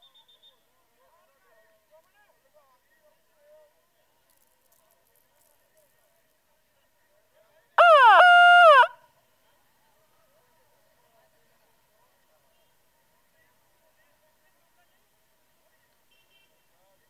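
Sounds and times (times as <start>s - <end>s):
loud pitched call: 7.8s - 8.9s.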